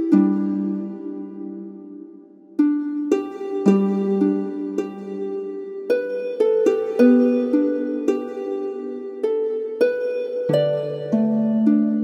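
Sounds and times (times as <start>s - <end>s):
hymn played on plucked strings: 0.0s - 12.0s.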